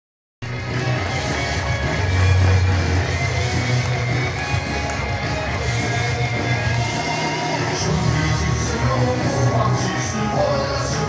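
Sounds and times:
cheer music: 0.4 - 11.0
stadium crowd noise: 0.4 - 11.0.

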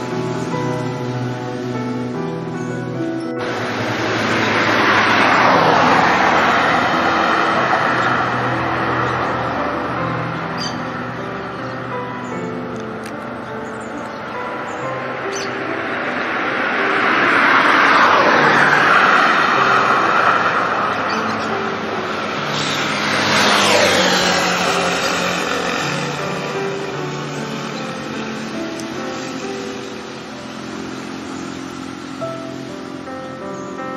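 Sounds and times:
soft music with sustained notes: 0.0 - 33.9
vehicles whooshing past: 0.0 - 33.9.

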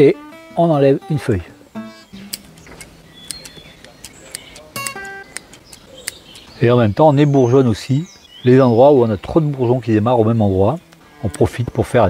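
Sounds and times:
scissors snipping leaves: 2.2 - 6.6.

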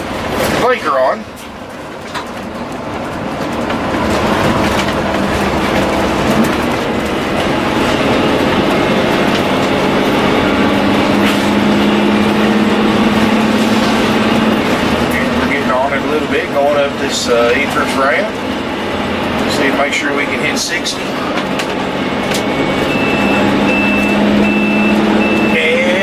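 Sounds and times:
diesel engine under load: 0.0 - 26.0
road and tyre noise: 0.0 - 26.0
man speaking: 15.1 - 18.4, 19.4 - 21.2, 25.4 - 26.0.

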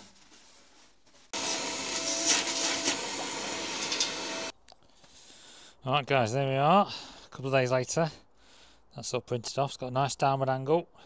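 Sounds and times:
cloth rubbing: 0.0 - 3.1
small electric tool whining: 1.4 - 4.5.

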